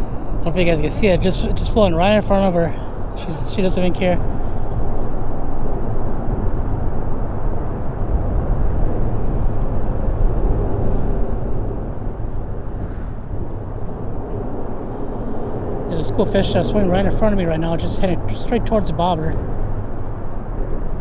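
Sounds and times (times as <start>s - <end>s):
low rumble of road traffic: 0.0s - 21.0s.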